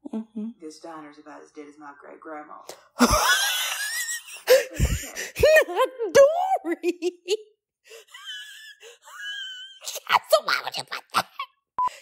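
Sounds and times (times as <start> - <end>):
person speaking or laughing: 3.0 - 11.6.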